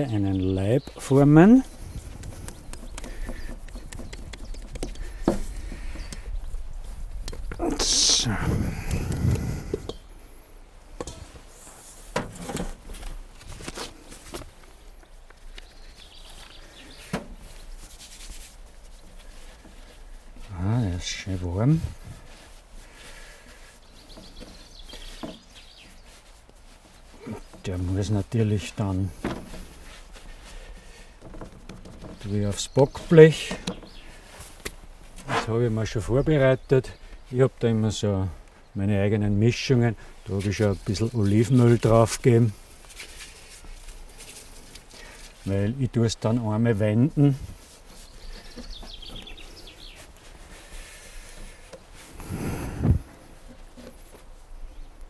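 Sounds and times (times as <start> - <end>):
hands slapping dough on board: 2.2 - 5.4.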